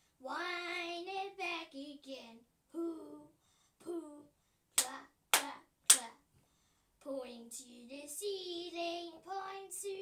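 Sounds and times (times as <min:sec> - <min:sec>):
sharp hand claps: 0:04.8 - 0:06.1.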